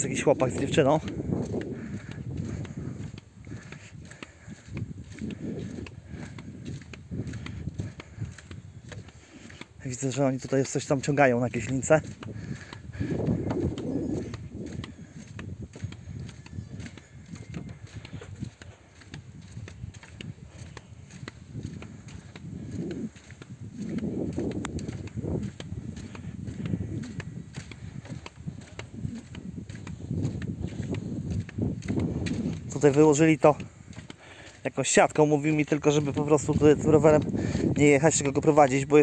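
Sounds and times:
footsteps on wooden boardwalk: 0:00.0 - 0:39.0
wind rumbling on microphone: 0:00.0 - 0:39.0.

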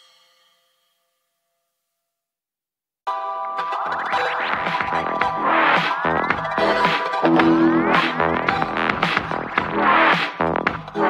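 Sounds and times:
faint electronic music: 0:03.1 - 0:11.0.

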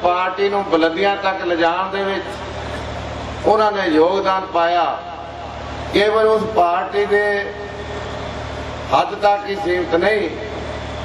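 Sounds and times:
man speaking into microphone: 0:00.0 - 0:02.5, 0:03.4 - 0:07.8, 0:08.9 - 0:10.7.

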